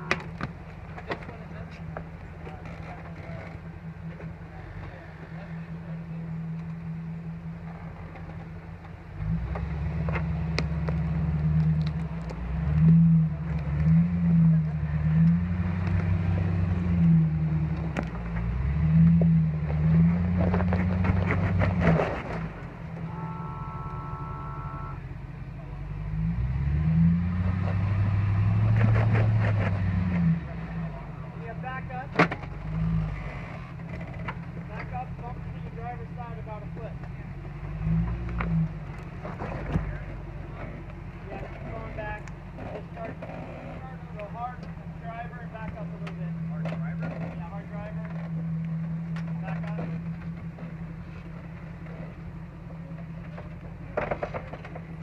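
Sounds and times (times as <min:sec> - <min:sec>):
people talking: 0:00.0 - 0:06.5, 0:13.4 - 0:15.4, 0:30.2 - 0:32.5, 0:34.6 - 0:37.4, 0:39.2 - 0:48.3, 0:49.2 - 0:50.0
suv engine revving: 0:00.0 - 0:55.0.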